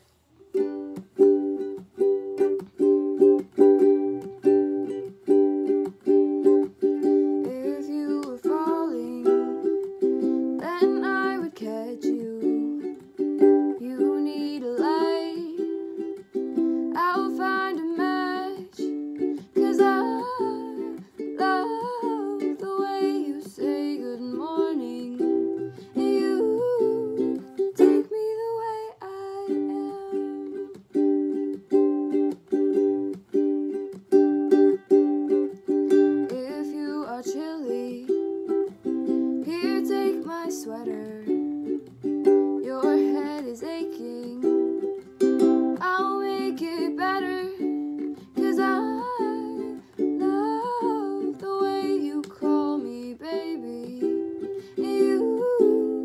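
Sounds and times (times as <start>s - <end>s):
girl singing: 0.0s - 56.0s
strummed ukulele: 0.0s - 56.0s.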